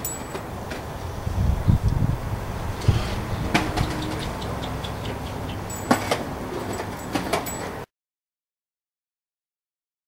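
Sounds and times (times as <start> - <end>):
skateboard rolling on pavement: 0.0 - 7.5.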